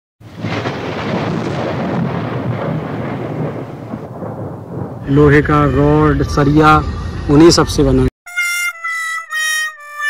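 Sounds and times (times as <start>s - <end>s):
wind rumbling on microphone: 0.3s - 8.1s.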